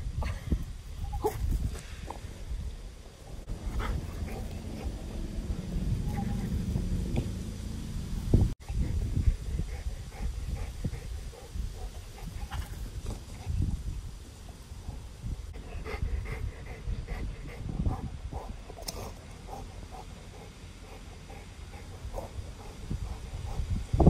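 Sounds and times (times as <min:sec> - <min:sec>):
dog panting: 0:03.5 - 0:06.9, 0:08.6 - 0:13.6, 0:15.6 - 0:24.0.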